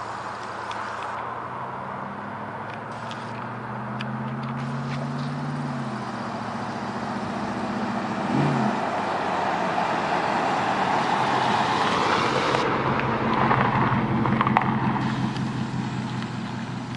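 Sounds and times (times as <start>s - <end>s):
pickup truck driving past: 1.1s - 16.9s.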